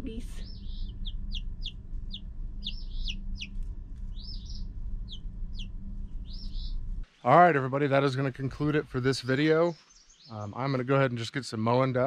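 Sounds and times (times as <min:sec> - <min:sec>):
chicks peeping: 0:00.0 - 0:06.8
low steady hum: 0:00.0 - 0:12.0.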